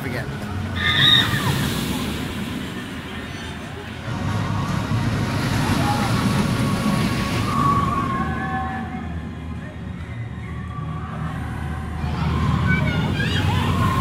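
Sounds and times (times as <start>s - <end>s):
roller coaster train rumbling on track: 0.0s - 14.0s.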